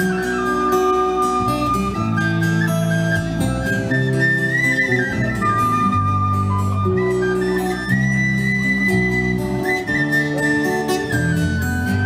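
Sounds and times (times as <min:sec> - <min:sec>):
bass: 0:00.0 - 0:12.0
strummed guitars: 0:00.0 - 0:12.0
tin whistle melody: 0:00.0 - 0:12.0.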